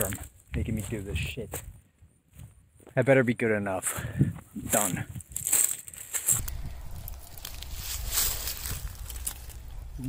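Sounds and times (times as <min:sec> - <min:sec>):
footsteps through dry grass: 0:00.0 - 0:03.1, 0:03.8 - 0:10.0
steady low rumble: 0:06.3 - 0:10.0.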